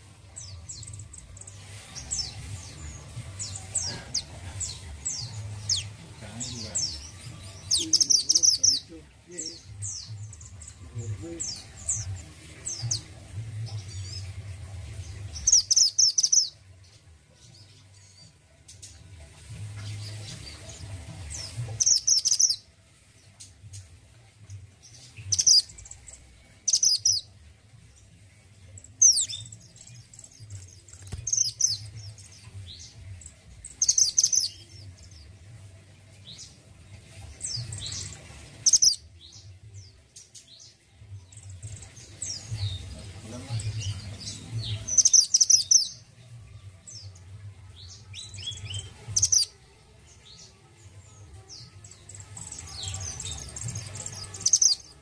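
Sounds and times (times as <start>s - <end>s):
bird chirping rapidly: 0.5s - 10.8s, 15.4s - 16.6s, 21.4s - 22.6s, 25.3s - 27.3s, 28.9s - 35.1s, 37.7s - 39.0s, 42.8s - 46.0s, 48.8s - 49.5s, 52.4s - 55.0s.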